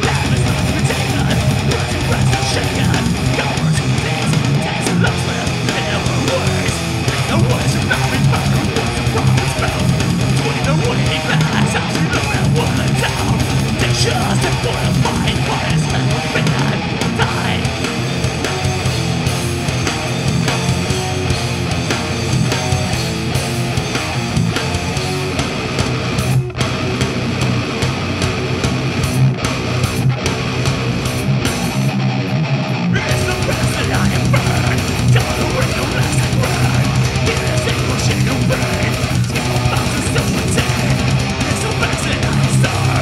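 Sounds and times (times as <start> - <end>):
distorted electric guitars: 0.0 - 43.0
heavy metal band playing: 0.0 - 43.0
rapid bass drum strokes: 0.0 - 43.0.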